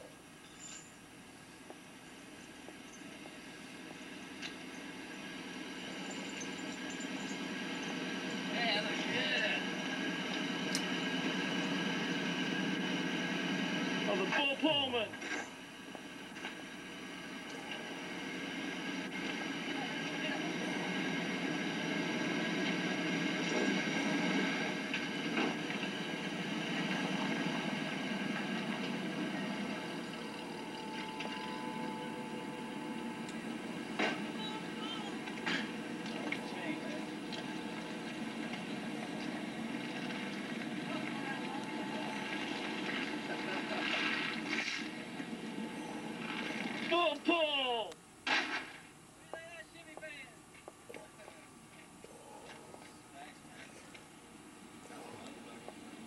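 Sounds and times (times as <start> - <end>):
vehicle engine running: 3.1 - 46.9
indistinct voices: 26.3 - 48.0.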